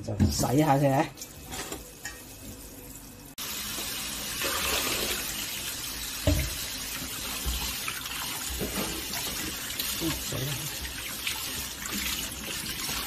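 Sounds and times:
tap water running into bowl: 0:03.6 - 0:13.0.

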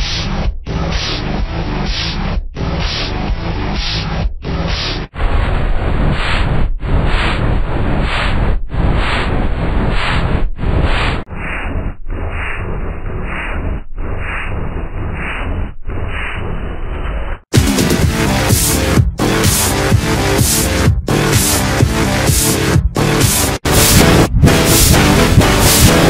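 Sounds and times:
distorted noisy rush: 0:00.0 - 0:26.0.

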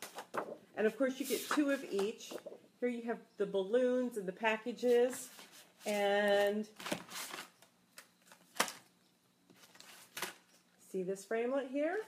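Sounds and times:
paper packaging rustling: 0:04.9 - 0:07.6, 0:09.5 - 0:10.6.

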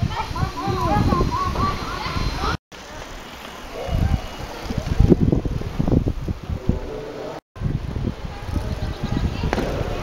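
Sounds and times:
wind buffeting microphone: 0:00.0 - 0:02.6, 0:03.8 - 0:10.0
street noise: 0:00.0 - 0:10.0.

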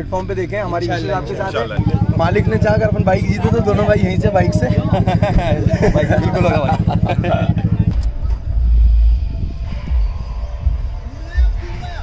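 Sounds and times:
loud deep rumble: 0:01.8 - 0:12.0.

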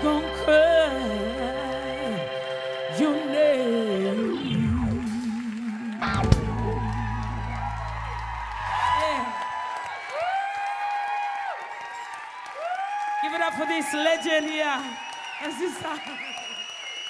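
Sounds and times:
audience whooping and cheering: 0:04.9 - 0:17.0.

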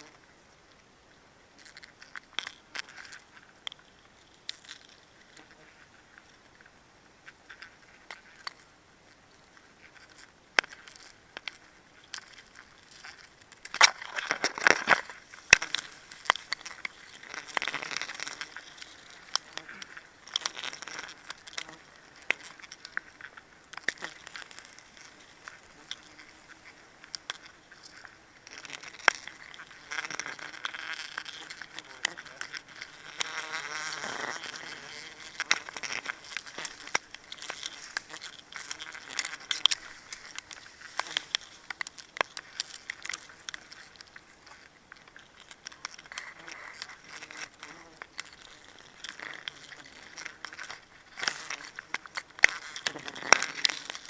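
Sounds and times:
rustling of leaves and branches: 0:00.0 - 0:54.0.

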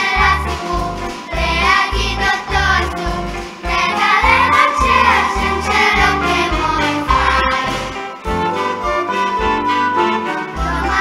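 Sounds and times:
band playing upbeat song live: 0:00.0 - 0:11.0
bass line: 0:00.2 - 0:08.6.

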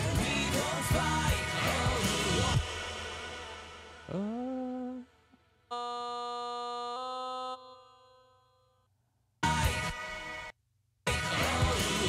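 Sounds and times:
pitch-corrected vocal note: 0:04.0 - 0:08.4.

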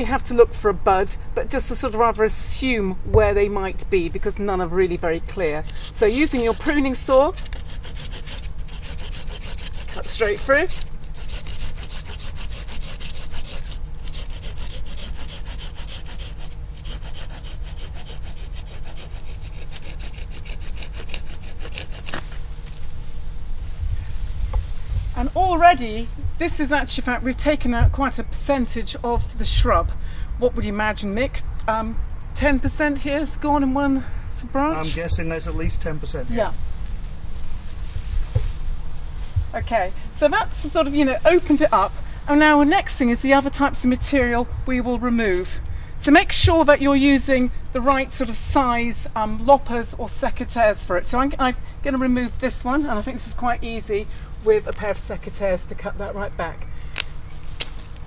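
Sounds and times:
hand saw cutting woody stem: 0:05.4 - 0:22.8
wind buffeting microphone: 0:23.6 - 0:31.5, 0:34.6 - 0:47.1.

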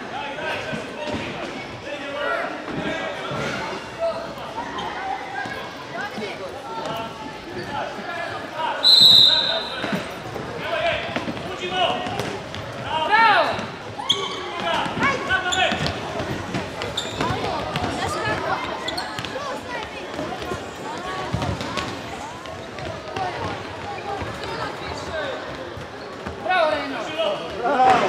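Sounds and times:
referee's whistle blast: 0:08.8 - 0:09.8.

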